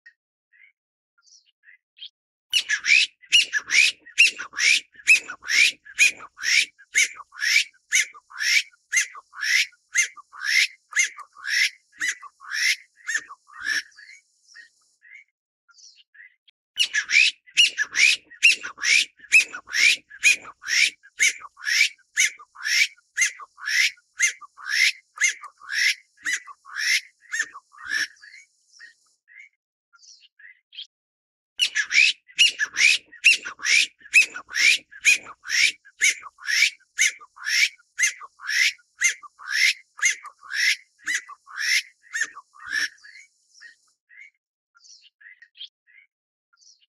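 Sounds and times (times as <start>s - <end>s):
partridge calling: 2.5s - 15.2s, 16.8s - 29.4s, 31.6s - 44.3s.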